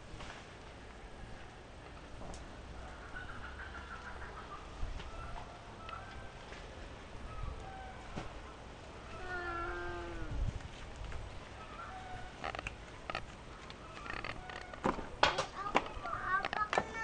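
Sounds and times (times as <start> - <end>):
drawn-out animal call: 11.5 - 14.8.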